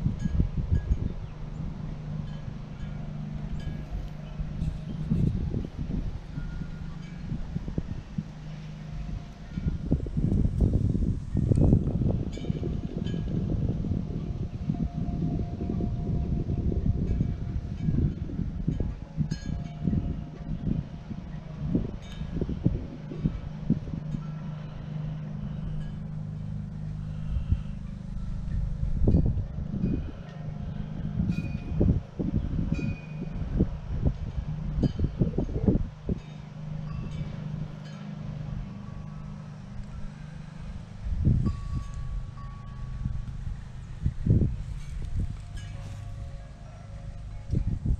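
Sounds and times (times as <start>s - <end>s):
gusty wind buffeting microphone: 0.0s - 47.9s
steady low rumble: 0.0s - 47.9s.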